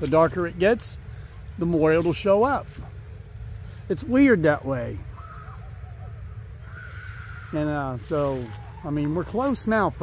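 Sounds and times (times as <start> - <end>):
low outdoor rumble: 0.0 - 10.0
faint bird calls: 2.8 - 10.0.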